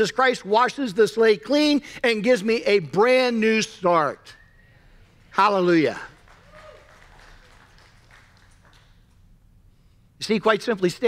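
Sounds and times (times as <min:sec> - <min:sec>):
faint applause: 0:06.0 - 0:09.1.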